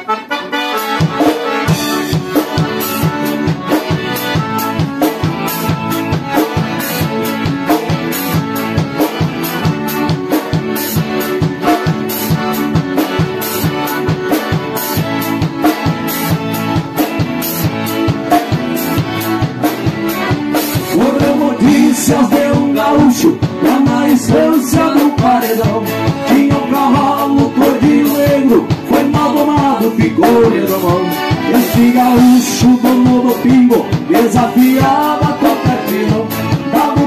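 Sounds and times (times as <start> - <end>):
accordions playing: 0.0 - 37.0
acoustic guitar: 0.0 - 37.0
drum kit beat: 0.0 - 37.0.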